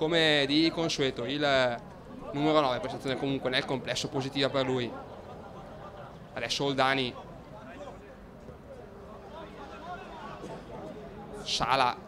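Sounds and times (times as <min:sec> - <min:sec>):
low outdoor background: 0:00.0 - 0:12.0.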